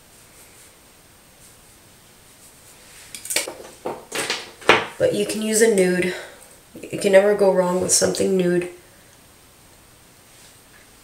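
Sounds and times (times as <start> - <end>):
makeup cases clattering: 3.4 - 5.3.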